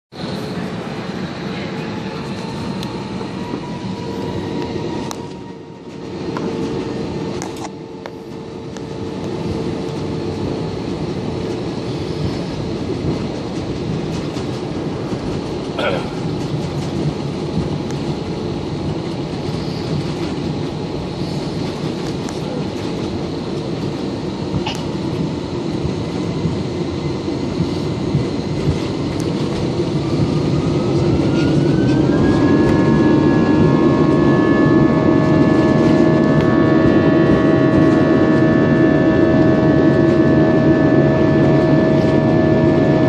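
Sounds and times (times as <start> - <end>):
aircraft cabin engine rumble: 0.1 - 43.0.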